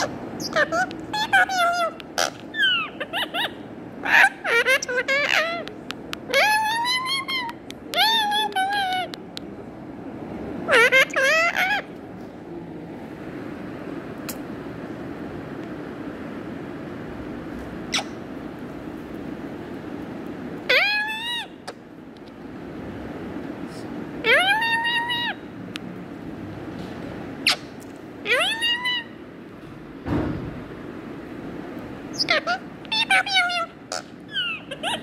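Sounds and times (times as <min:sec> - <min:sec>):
parrot calls: 0:00.0 - 0:05.7, 0:06.3 - 0:09.2, 0:10.7 - 0:11.9, 0:17.9 - 0:18.3, 0:20.6 - 0:21.8, 0:24.2 - 0:25.5, 0:27.4 - 0:29.2, 0:32.1 - 0:35.0
low background hum: 0:00.0 - 0:35.0.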